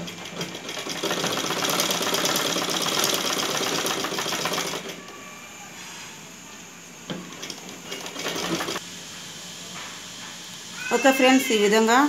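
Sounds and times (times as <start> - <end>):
sewing machine stitching: 0.0 - 5.0, 7.3 - 8.8.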